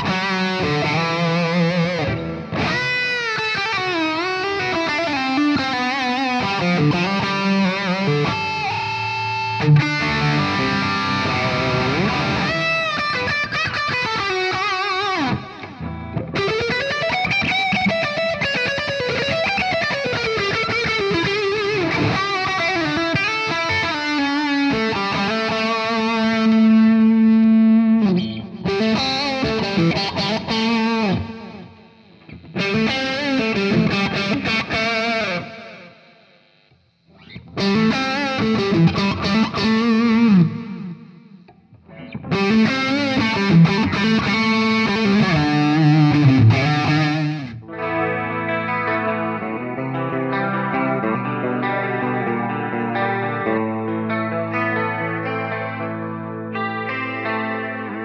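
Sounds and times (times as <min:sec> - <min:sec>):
overdriven electric guitar: 0:00.0 - 0:58.0.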